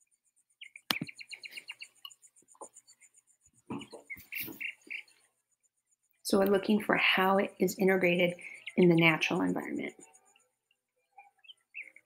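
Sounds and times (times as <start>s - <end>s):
bird chirps: 0.0s - 6.7s, 7.4s - 12.0s.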